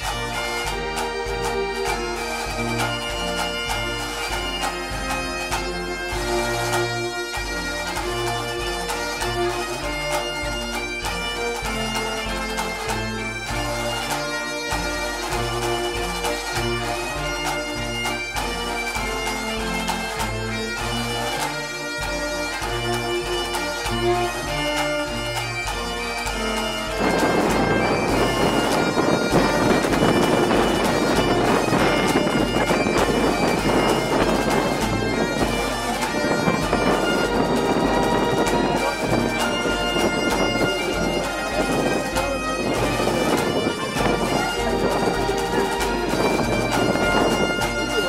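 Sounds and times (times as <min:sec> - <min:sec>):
bagpipe music with drones: 0:00.0 - 0:48.0.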